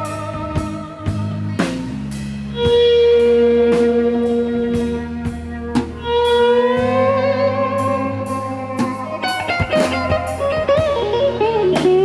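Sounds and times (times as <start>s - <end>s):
bowed electric upright bass: 0.0s - 12.0s
drum kit snare and cymbals: 0.0s - 12.0s
electric guitar lead notes: 0.0s - 12.0s.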